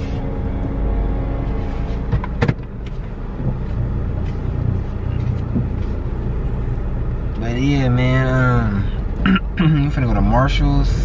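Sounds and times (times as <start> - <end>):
car engine rumble inside cabin: 0.0 - 11.0.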